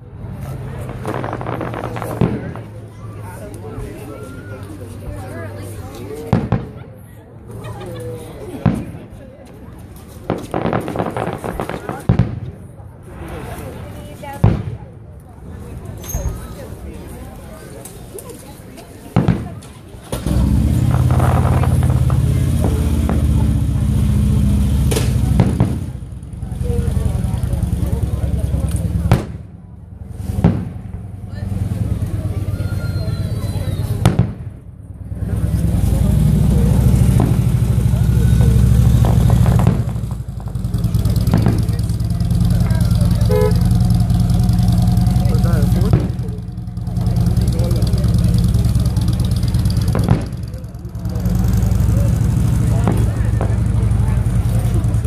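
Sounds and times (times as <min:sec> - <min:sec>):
crowd voices: 0:00.0 - 0:55.0
firework shells bursting: 0:00.8 - 0:02.8, 0:10.2 - 0:14.9, 0:36.8 - 0:55.0.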